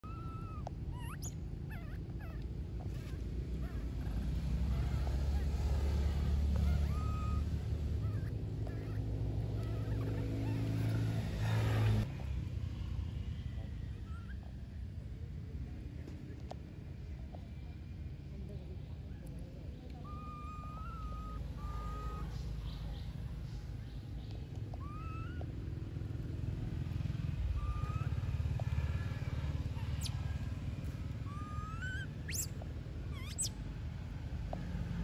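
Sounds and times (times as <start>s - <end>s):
macaque coo calls: 0.0s - 12.0s, 19.8s - 33.6s.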